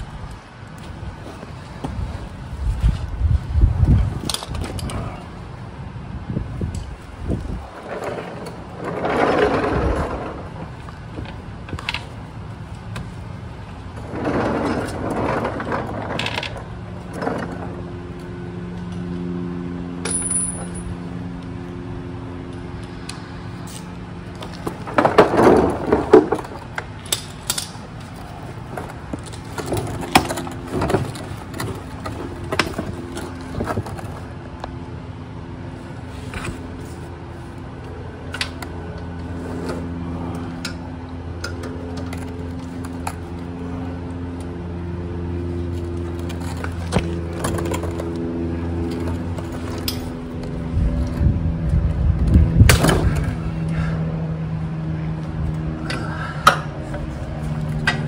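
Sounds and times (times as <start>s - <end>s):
steady low hum: 0.0s - 58.0s
scraping and rattling: 7.4s - 12.1s, 13.9s - 17.8s, 24.4s - 34.3s.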